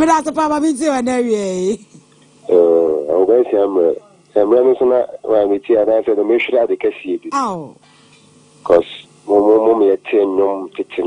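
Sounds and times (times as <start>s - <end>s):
person talking: 2.5s - 6.5s, 7.2s - 7.8s.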